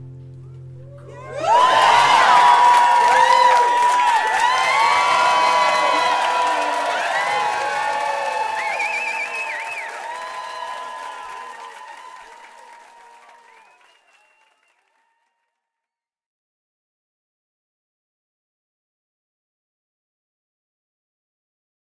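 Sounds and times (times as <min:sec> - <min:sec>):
crowd cheering and applauding: 0:00.8 - 0:15.4
voices shouting: 0:01.0 - 0:09.0.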